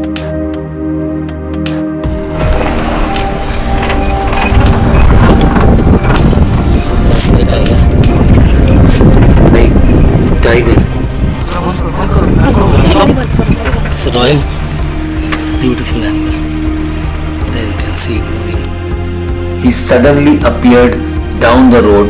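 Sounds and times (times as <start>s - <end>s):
background music: 0.0s - 22.0s
wind buffeting microphone: 2.4s - 15.4s
jeep engine running: 2.4s - 18.7s.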